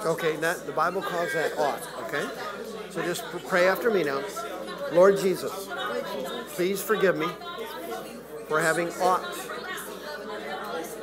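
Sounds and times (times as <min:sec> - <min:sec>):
man speaking: 0:00.0 - 0:02.4, 0:06.5 - 0:07.4
quiet talk in a large room: 0:00.0 - 0:11.0.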